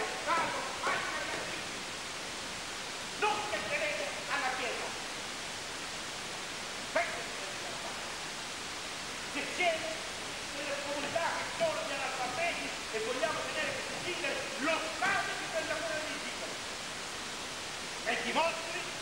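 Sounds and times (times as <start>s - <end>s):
recording hiss: 0.0s - 19.0s.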